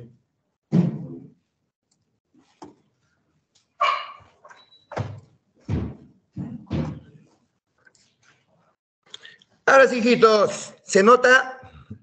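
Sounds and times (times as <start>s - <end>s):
dog barking: 3.8s - 4.3s.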